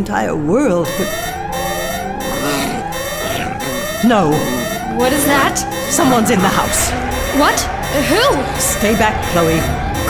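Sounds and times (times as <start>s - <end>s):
alarm rising wail: 0.7s - 10.0s.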